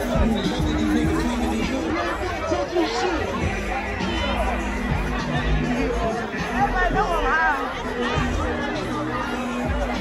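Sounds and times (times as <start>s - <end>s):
crowd talking: 0.0s - 10.0s
loud music with heavy bass: 0.0s - 10.0s.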